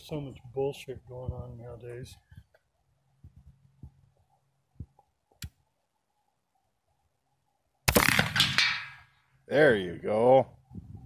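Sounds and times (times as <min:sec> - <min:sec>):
rifle shot: 0:07.9 - 0:09.0.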